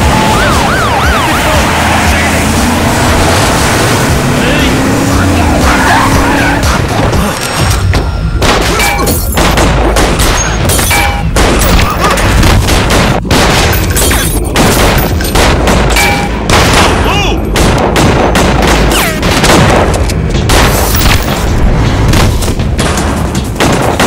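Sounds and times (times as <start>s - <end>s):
booming impacts: 0.0s - 24.0s
rapid pistol and rifle shots: 8.4s - 24.0s.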